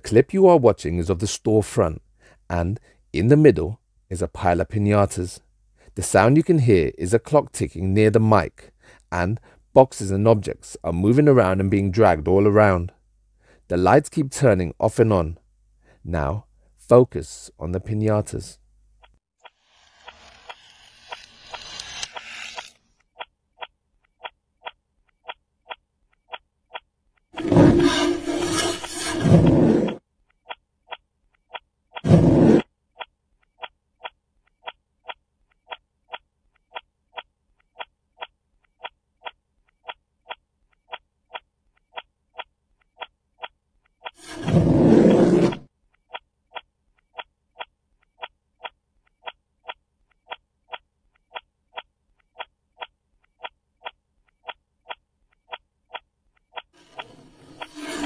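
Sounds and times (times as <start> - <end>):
clock ticking: 23.0 - 27.3, 30.3 - 32.1, 32.9 - 44.2, 45.9 - 57.7
boxes scraping as dragged: 27.4 - 30.0, 32.0 - 32.6, 44.2 - 45.6, 56.8 - 58.0.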